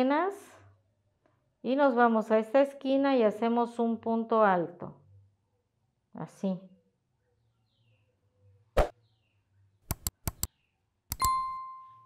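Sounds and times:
quick clicks: 9.9s - 10.5s
bell ding: 11.2s - 12.0s.

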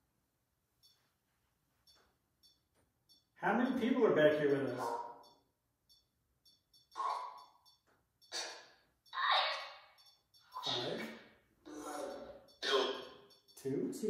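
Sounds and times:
short voice-like bursts: 10.6s - 11.1s.

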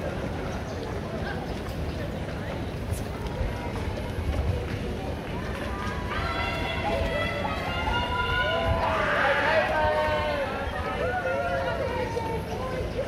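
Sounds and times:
crowd chatter: 0.0s - 13.0s
runners' footsteps on road: 0.0s - 13.0s.

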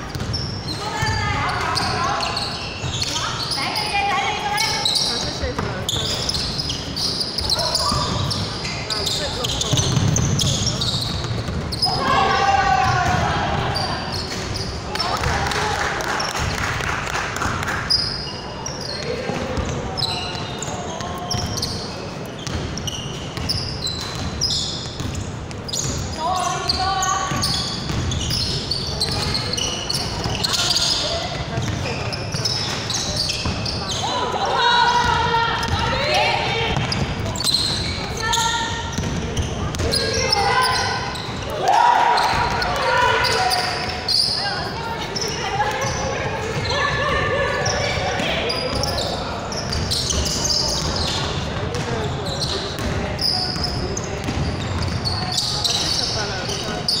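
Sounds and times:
shoes squeaking on floor: 0.0s - 15.3s, 17.7s - 57.0s
basketball bouncing on hardwood: 9.7s - 10.6s.

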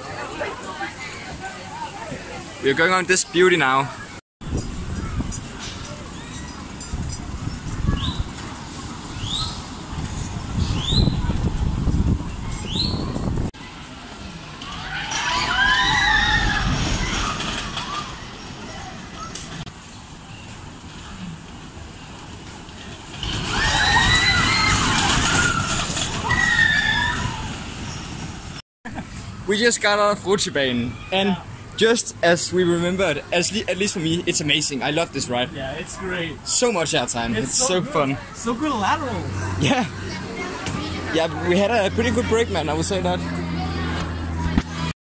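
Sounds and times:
roller coaster train rumbling: 0.0s - 44.9s
short rising squeaks: 14.6s - 19.6s, 23.1s - 28.2s.

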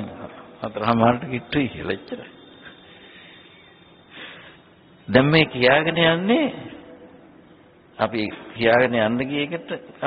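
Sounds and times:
man speaking: 0.0s - 2.4s, 5.1s - 6.8s
faint recording hiss: 0.0s - 10.0s.

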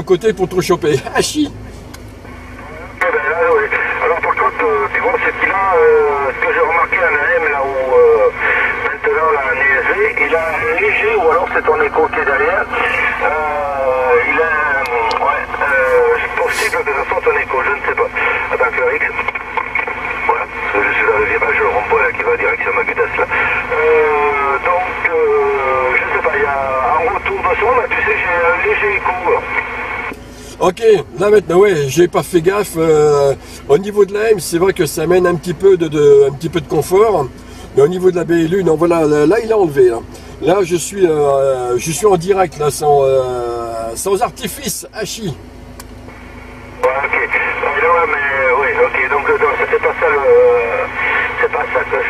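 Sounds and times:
low hum: 0.0s - 52.0s
radio speech through speaker: 2.6s - 41.1s, 46.8s - 52.0s.

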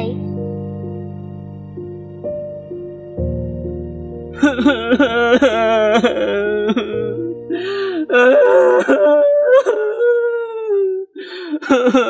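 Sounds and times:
man wailing: 4.4s - 11.1s.

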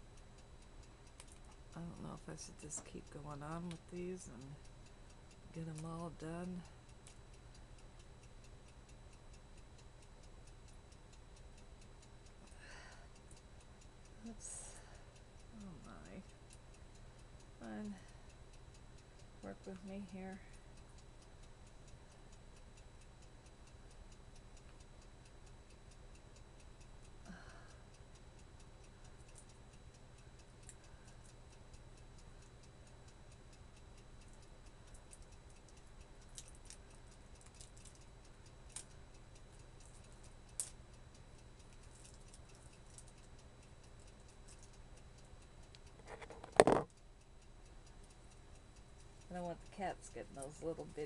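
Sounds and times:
faint ticking: 0.0s - 51.0s.

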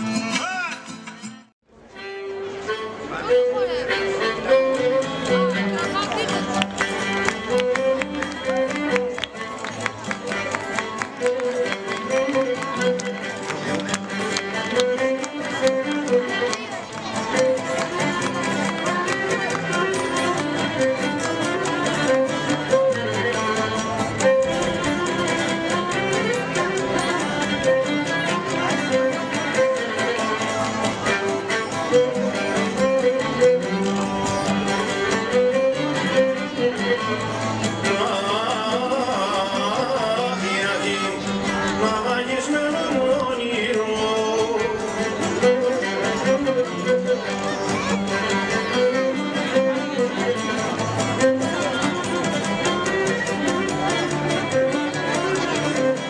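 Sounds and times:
folk dance music: 0.0s - 56.0s
bowed string melody: 1.4s - 56.0s.

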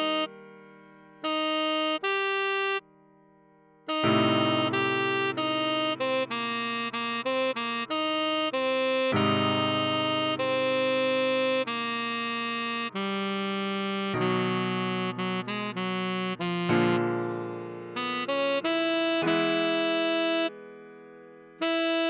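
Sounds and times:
tenor saxophone melody: 0.0s - 2.9s, 3.8s - 20.6s, 21.6s - 22.0s
keyboard chords: 0.0s - 22.0s.

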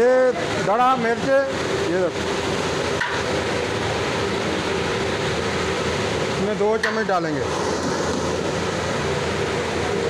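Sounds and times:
onions frying in hot oil: 0.0s - 10.0s.

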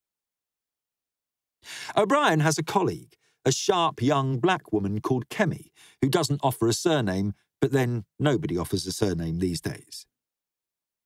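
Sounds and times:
man inhaling: 1.6s - 2.0s, 5.7s - 6.0s.

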